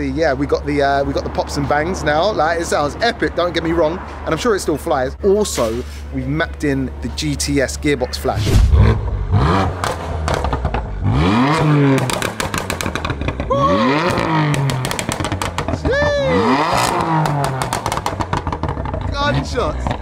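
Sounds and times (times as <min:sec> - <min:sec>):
car engine revving: 0:08.3 - 0:20.0
exhaust pops and bangs: 0:08.5 - 0:20.0.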